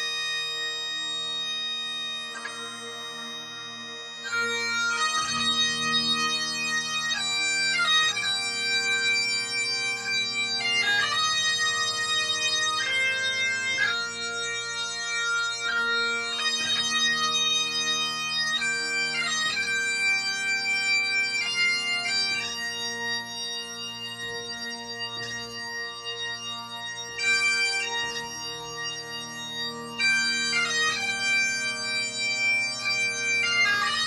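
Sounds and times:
bagpipe drones: 0:00.0 - 0:34.0
bagpipes playing slow melody: 0:00.0 - 0:34.0.

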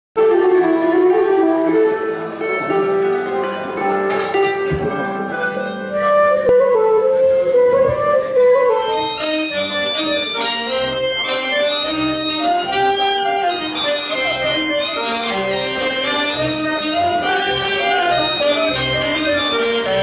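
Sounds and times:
folk band accompaniment with beat: 0:00.2 - 0:20.0
wind instrument melody: 0:00.2 - 0:20.0.

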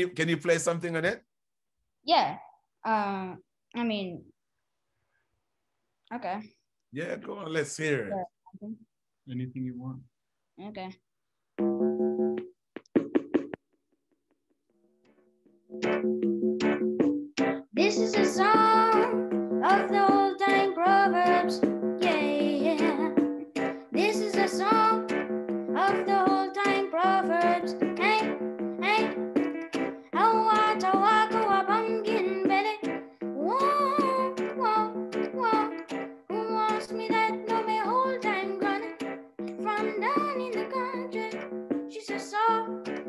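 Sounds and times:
electronic keyboard chords and notes: 0:11.6 - 0:13.6, 0:15.0 - 0:42.0, 0:42.7 - 0:43.0
boy singing reggae song: 0:17.8 - 0:23.2, 0:24.0 - 0:25.1, 0:25.8 - 0:29.1, 0:30.2 - 0:38.9, 0:39.5 - 0:42.8.

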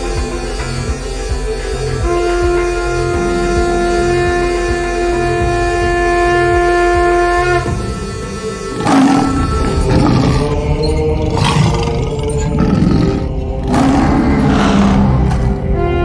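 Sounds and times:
horror film score: 0:00.0 - 0:16.0
creature roaring and snarling: 0:08.7 - 0:15.6.

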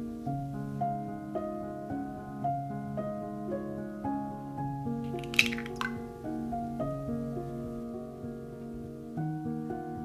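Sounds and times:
egg splatting into glass bowl: 0:05.1 - 0:06.0.

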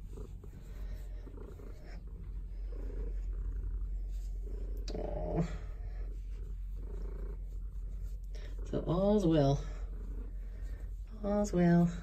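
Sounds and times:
cat purring: 0:00.0 - 0:12.0.

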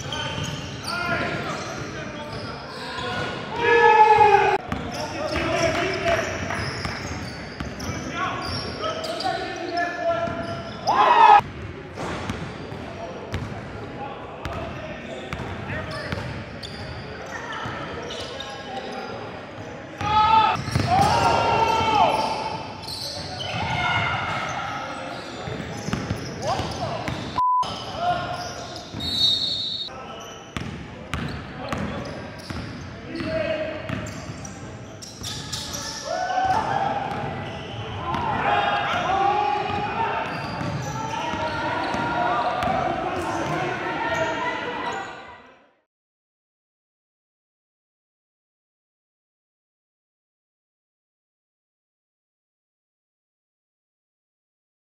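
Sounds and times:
sneaker squeaks: 0:00.0 - 0:03.5, 0:04.7 - 0:11.4, 0:12.0 - 0:13.5, 0:14.5 - 0:38.3, 0:39.6 - 0:45.3.

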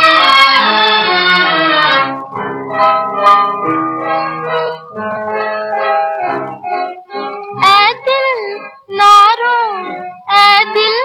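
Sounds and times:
orchestral accompaniment: 0:00.0 - 0:08.7
woman singing: 0:07.6 - 0:11.0.

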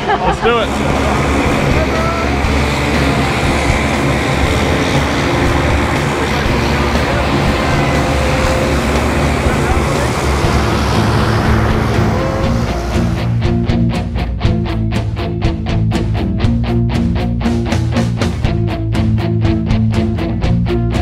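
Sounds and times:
indistinct voices: 0:00.0 - 0:13.6
propeller plane engine running: 0:00.0 - 0:21.0.

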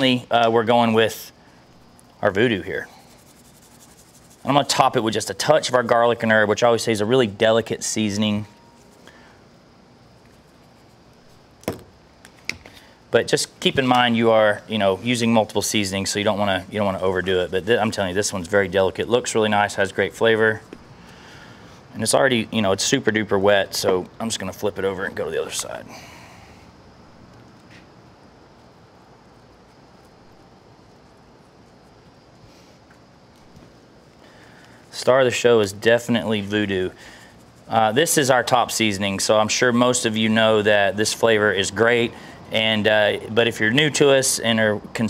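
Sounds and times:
faint steady hiss: 0:00.0 - 0:45.0.

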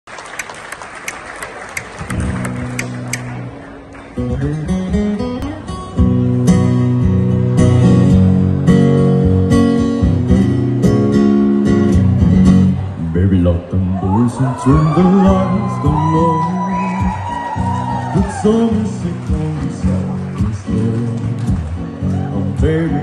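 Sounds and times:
acoustic guitar playing chords: 0:02.0 - 0:23.0
man singing low: 0:13.1 - 0:17.2, 0:18.1 - 0:23.0.

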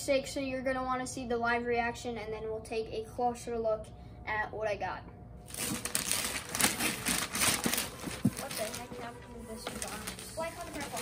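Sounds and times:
wrapping paper rustling and tearing: 0:05.5 - 0:11.0.

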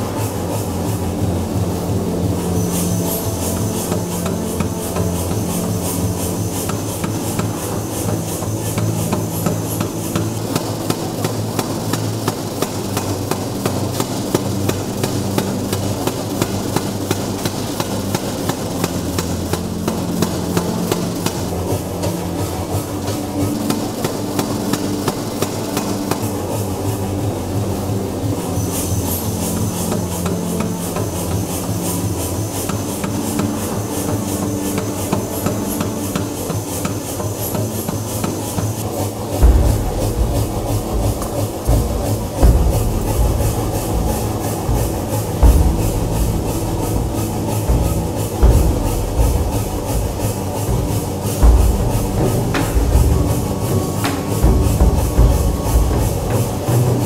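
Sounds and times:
hammers beating brass gong: 0:00.0 - 0:57.0
heavy deep thuds: 0:39.4 - 0:56.7.

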